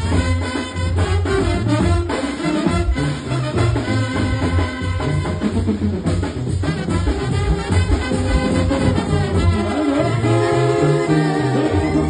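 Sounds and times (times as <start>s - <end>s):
drum beat: 0.0s - 9.7s
brass band playing live: 0.0s - 12.0s
trumpets: 0.0s - 12.0s.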